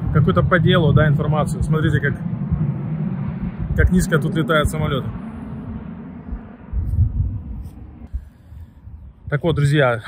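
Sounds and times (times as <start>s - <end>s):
jet airliner rumble: 0.0s - 10.0s.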